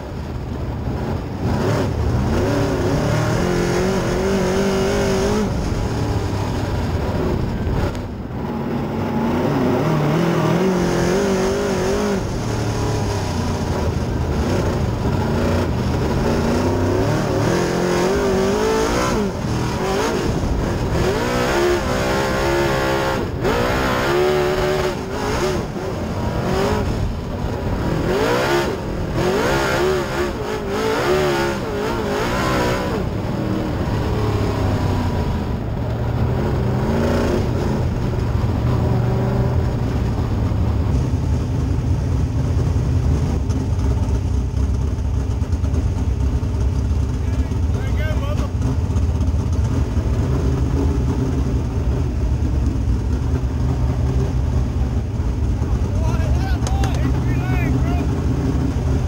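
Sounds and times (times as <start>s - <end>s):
race car engine revving: 0.8s - 59.0s.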